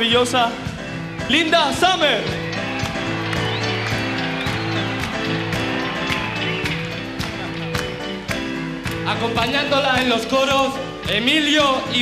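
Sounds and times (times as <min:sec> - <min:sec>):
steady drum beat: 0:00.0 - 0:12.0
keyboard chords: 0:00.6 - 0:12.0.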